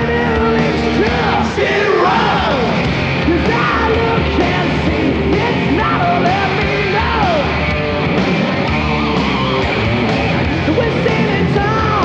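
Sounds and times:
hard rock band playing: 0.0s - 12.0s.

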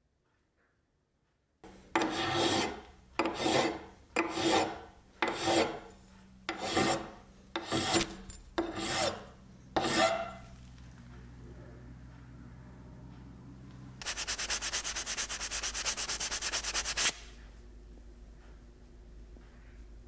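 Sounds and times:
metal file rasping on brass rod: 2.0s - 5.9s, 6.5s - 10.5s.

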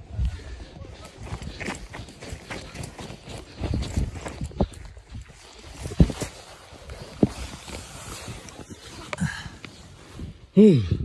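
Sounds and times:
footsteps crunching in snow: 0.3s - 10.4s.

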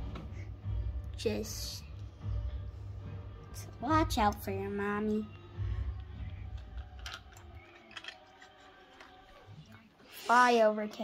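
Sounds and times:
plastic toy pieces clicking: 6.6s - 9.2s.

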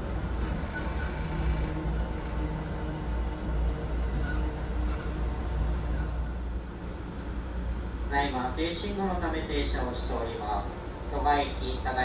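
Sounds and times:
train car rumbling: 0.0s - 12.0s.

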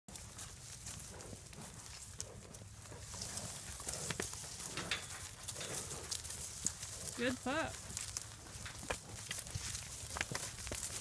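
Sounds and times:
hooves shuffling through dry grass: 0.1s - 11.0s.

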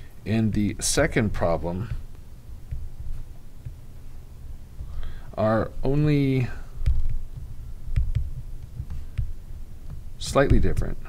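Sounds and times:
stylus tapping on a tablet: 1.4s - 6.1s, 6.7s - 10.9s.

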